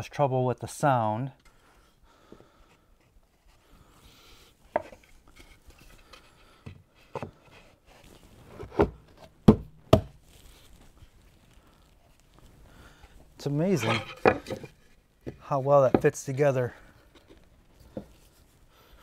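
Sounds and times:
sharp wooden knocks: 8.8 - 10.1.

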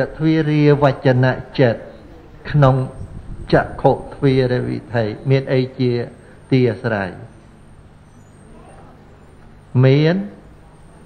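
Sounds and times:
man talking: 0.0 - 7.4, 9.7 - 10.5
faint steady background hum: 0.0 - 11.0.

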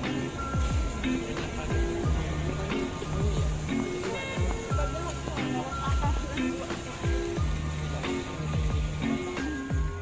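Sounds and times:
lo-fi instrumental beat: 0.0 - 10.0.

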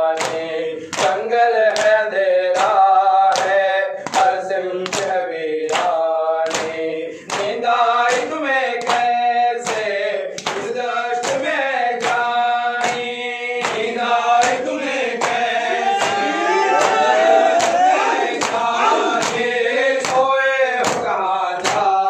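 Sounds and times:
men chanting in unison: 0.0 - 22.0.

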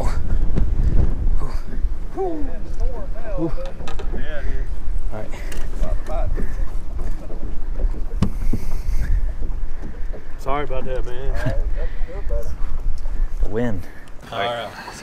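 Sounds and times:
wind buffeting microphone: 0.0 - 14.3.

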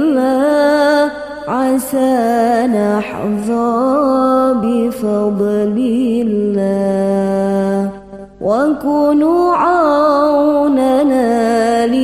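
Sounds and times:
person singing devotional song: 0.0 - 12.0.

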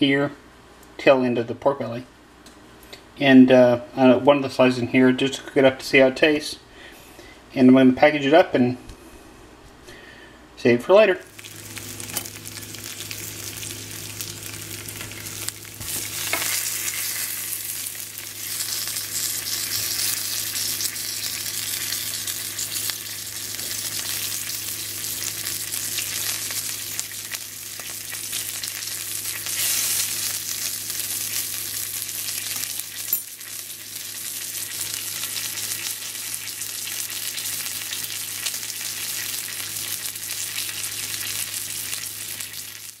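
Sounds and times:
bacon sizzling in a frying pan: 11.3 - 43.0.

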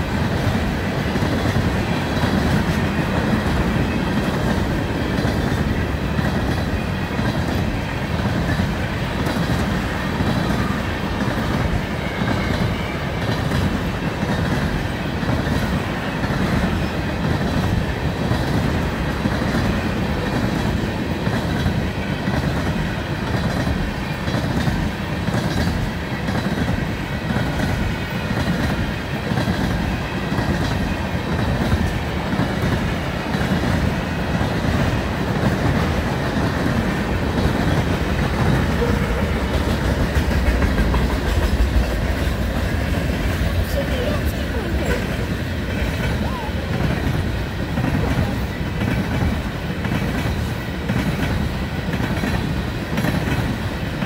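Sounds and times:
train wheels on rail: 0.0 - 54.0.

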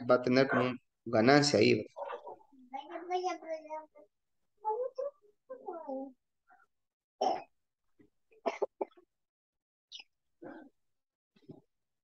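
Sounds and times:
person coughing: 8.4 - 9.0.

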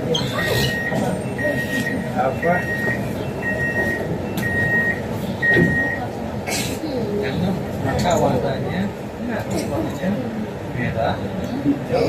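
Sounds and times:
train door warning beeps: 0.0 - 6.2
passenger chatter: 0.0 - 12.0
train cabin noise: 0.0 - 12.0.

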